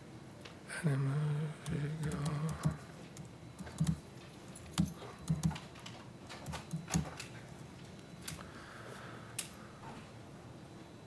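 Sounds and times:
person murmuring: 0.7 - 2.9
laptop keyboard clicks: 3.6 - 4.0, 4.7 - 5.6, 6.3 - 7.3.

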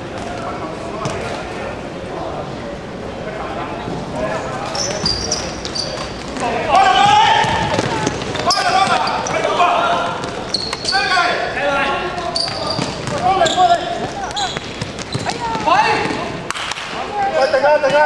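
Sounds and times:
shoes squeaking on court: 4.4 - 16.4
players shouting: 5.0 - 18.0
basketball bouncing: 6.3 - 9.1, 12.2 - 13.6.

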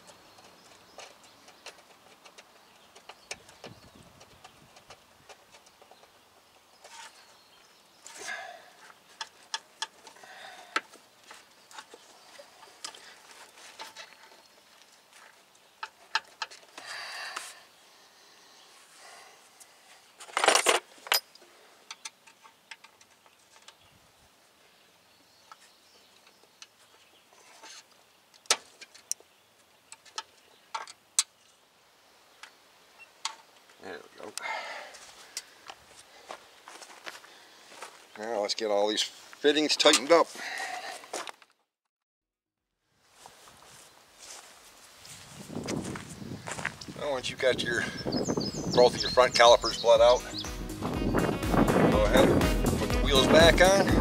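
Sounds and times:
hand tools clinking on metal: 39.8 - 40.2.

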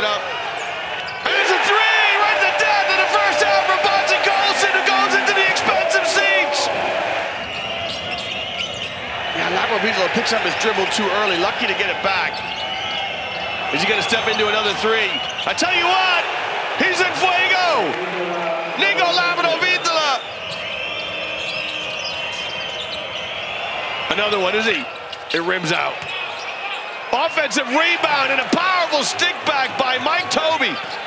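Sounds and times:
crowd noise: 0.0 - 31.0
commentator speaking: 1.2 - 6.8, 13.7 - 20.2.

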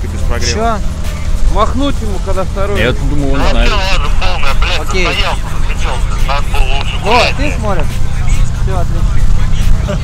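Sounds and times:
people talking: 0.0 - 10.0
steady low rumble: 0.0 - 10.0.

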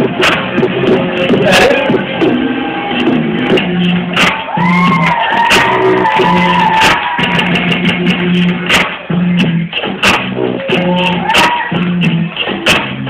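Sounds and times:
music over loudspeaker: 0.0 - 13.0.

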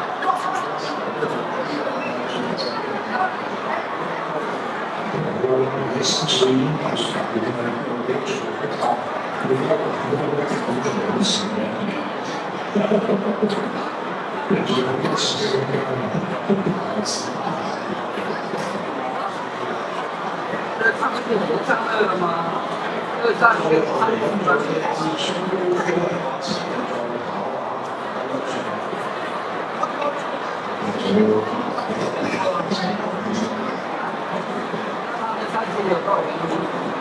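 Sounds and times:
murmur of crowd chatter: 0.0 - 37.0.

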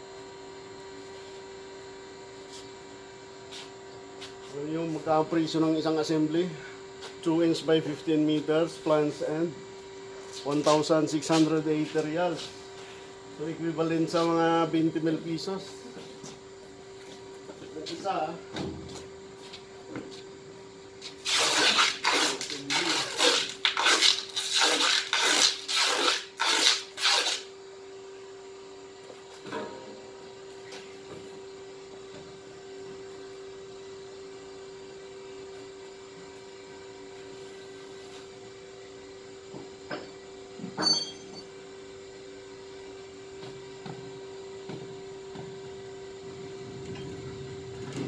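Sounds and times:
machinery humming: 42.8 - 48.0.

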